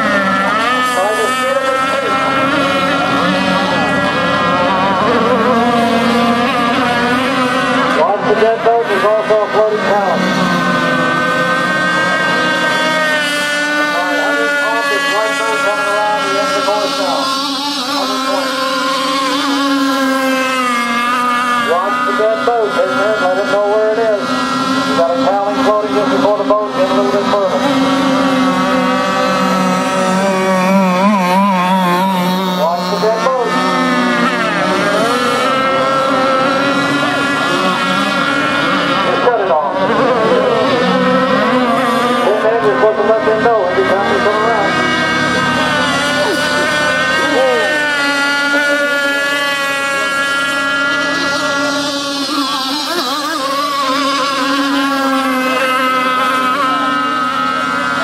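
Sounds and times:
model boat two-stroke engine: 0.0 - 58.0.

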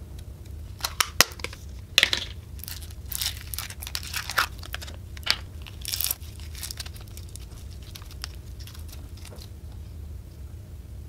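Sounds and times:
slime crackling and popping: 2.4 - 9.6.

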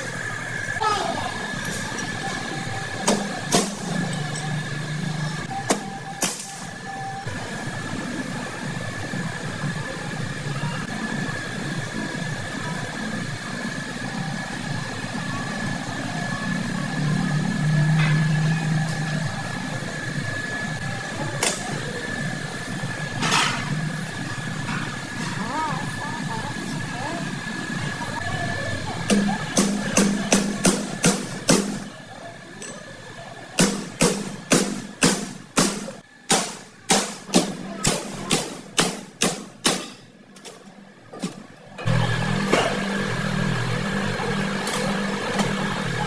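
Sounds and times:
high-pitched whine: 0.0 - 34.4
workshop noise: 0.0 - 46.0.

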